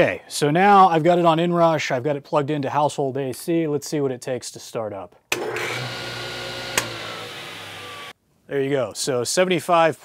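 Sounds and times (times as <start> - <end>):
table saw whining: 5.4 - 8.2
sharp click: 6.8 - 7.0.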